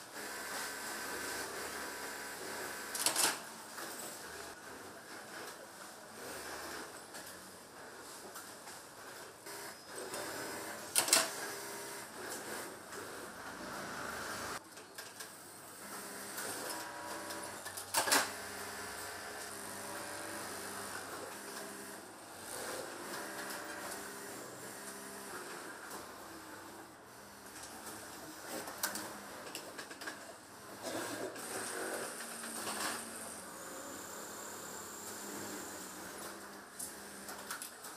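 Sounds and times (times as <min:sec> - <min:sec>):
industrial sewing machines running: 0:00.0 - 0:04.8, 0:06.1 - 0:07.0, 0:09.3 - 0:14.6, 0:15.3 - 0:37.9.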